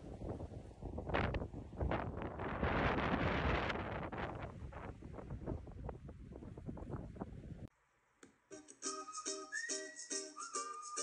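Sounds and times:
wind buffeting microphone: 0.0s - 7.7s.

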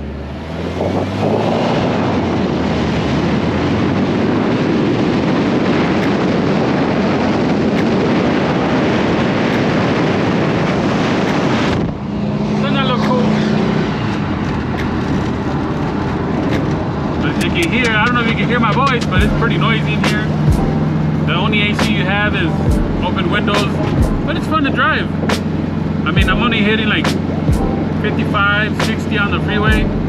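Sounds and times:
engine running while driving: 0.0s - 30.0s
low engine drone in cabin: 0.0s - 30.0s
wind and road noise: 0.0s - 30.0s.

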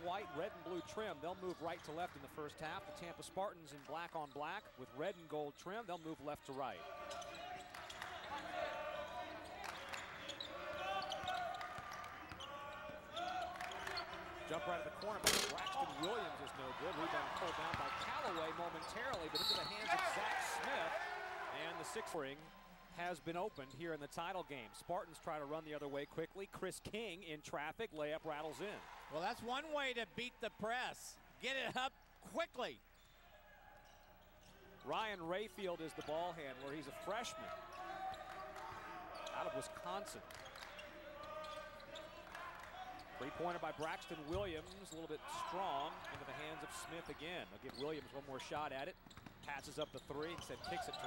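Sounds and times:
murmur of gym crowd: 0.0s - 27.6s, 30.2s - 51.0s.

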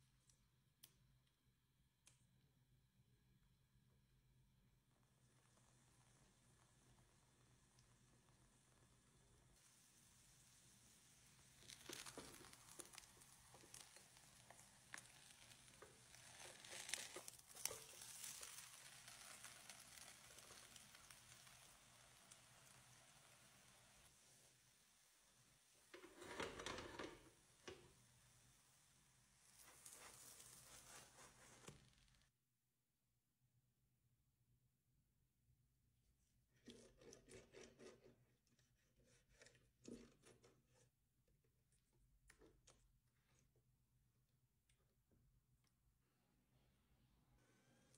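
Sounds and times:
omelette sizzling in pan: 4.9s - 26.4s, 27.2s - 32.3s.

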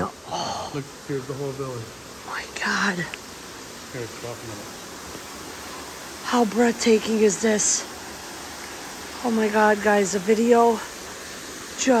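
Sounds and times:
steady hall ambience hiss: 0.0s - 12.0s.

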